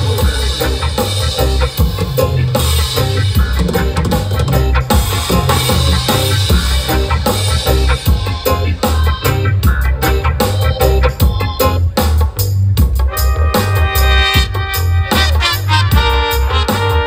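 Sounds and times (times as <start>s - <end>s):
deep bass line: 0.0s - 17.0s
drum kit: 0.0s - 17.0s
reggae band playing: 0.0s - 17.0s.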